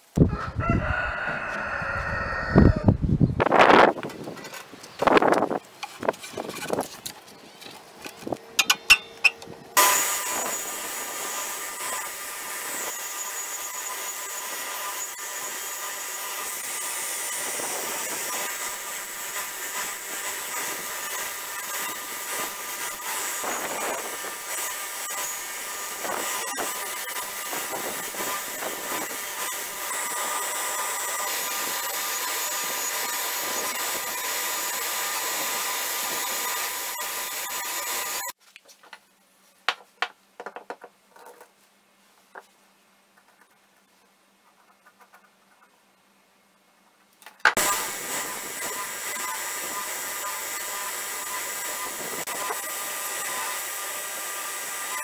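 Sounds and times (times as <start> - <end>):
belt grinder whining: 8.1 - 38.4, 47.5 - 55.0.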